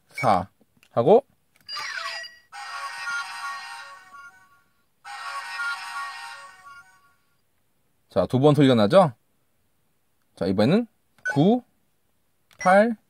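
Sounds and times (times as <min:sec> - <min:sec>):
electronic toy jingle: 0:01.7 - 0:07.2.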